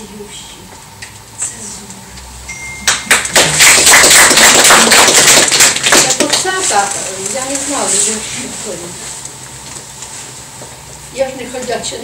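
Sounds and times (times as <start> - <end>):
audience applause: 2.9 - 6.5.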